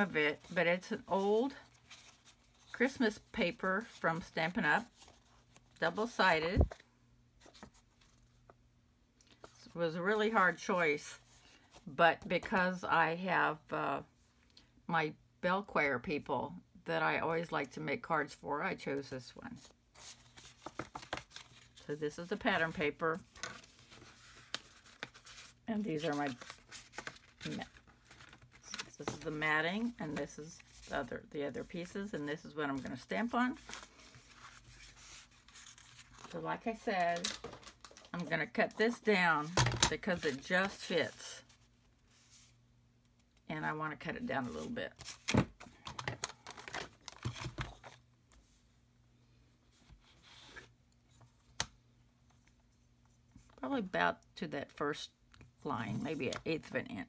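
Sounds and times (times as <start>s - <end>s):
paper rustling and crinkling: 19.9s - 31.0s, 32.7s - 42.6s, 46.0s - 48.4s.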